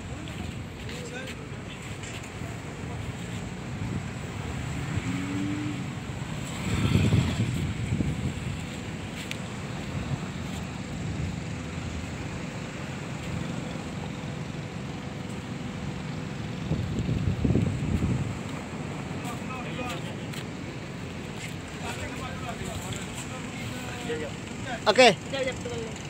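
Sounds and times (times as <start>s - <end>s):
wind buffeting microphone: 3.6s - 11.5s, 16.6s - 19.2s.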